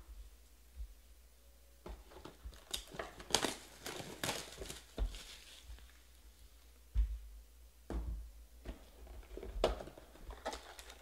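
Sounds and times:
plastic packaging crinkling: 0:02.2 - 0:06.1, 0:09.0 - 0:11.0.

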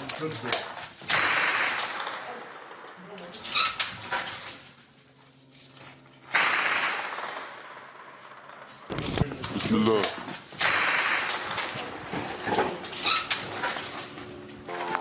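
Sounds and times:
short sharp burst: 0:06.3 - 0:07.3, 0:10.6 - 0:11.4.

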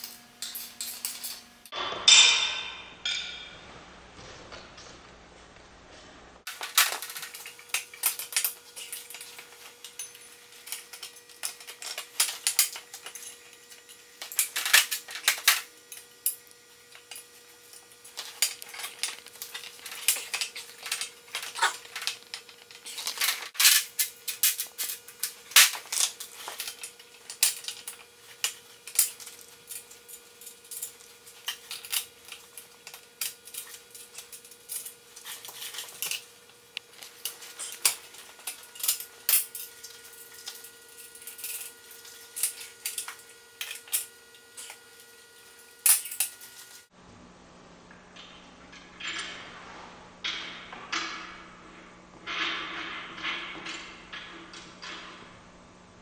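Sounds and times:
steel parts clinking: 0:00.0 - 0:03.5, 0:06.5 - 0:46.8.

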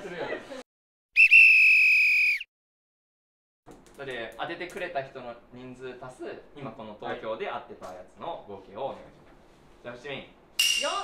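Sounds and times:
high whistle-like tone: 0:01.2 - 0:02.5.

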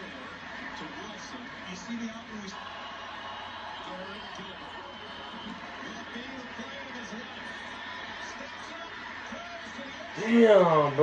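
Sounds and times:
stadium crowd noise: 0:00.0 - 0:11.0
commentator talking: 0:09.3 - 0:11.0.

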